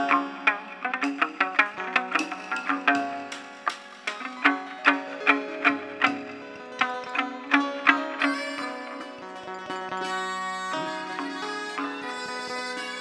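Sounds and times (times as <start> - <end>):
plucked lute melody: 0.0 - 13.0.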